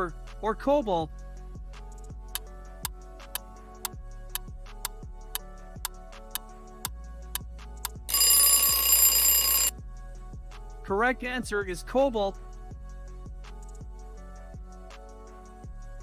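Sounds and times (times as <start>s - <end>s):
alarm clock bell ringing: 8.1s - 9.7s.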